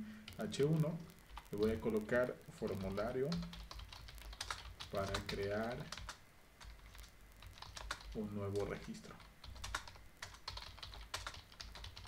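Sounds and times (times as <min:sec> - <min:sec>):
computer keyboard typing: 0:01.3 - 0:01.9, 0:02.6 - 0:12.0.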